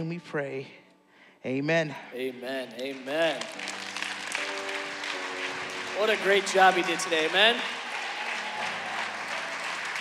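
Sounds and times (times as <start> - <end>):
congregation applause: 2.3 - 10.0.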